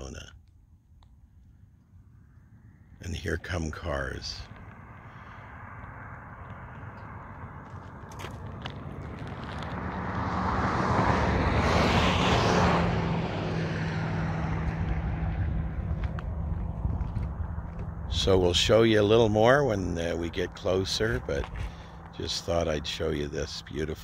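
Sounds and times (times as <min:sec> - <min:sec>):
low engine hum: 0:00.0 - 0:24.0
car passing on highway: 0:01.6 - 0:24.0.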